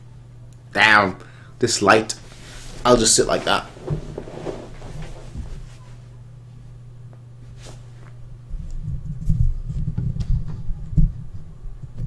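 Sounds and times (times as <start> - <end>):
low electrical hum: 0.0 - 12.0
faint rustling: 2.1 - 6.2.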